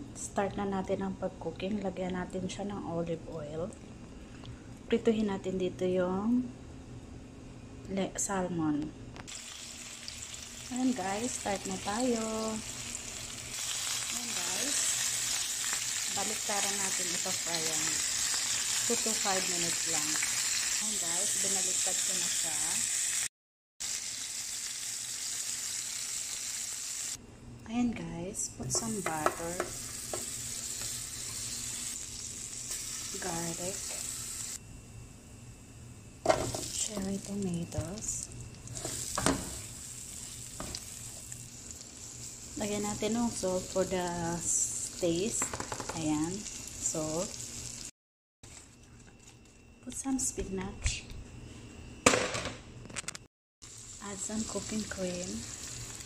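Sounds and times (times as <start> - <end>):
fish sizzling in a pan: 9.3 - 27.2, 29.0 - 34.6, 36.3 - 47.9, 53.6 - 56.0
food frying in butter: 9.3 - 27.2, 29.0 - 34.6, 36.3 - 47.9, 53.6 - 56.0.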